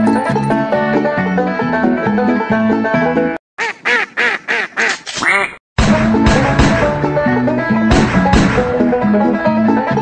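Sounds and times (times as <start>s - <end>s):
bluegrass banjo music: 0.0s - 3.4s, 6.0s - 10.0s
duck quacks: 3.6s - 5.6s.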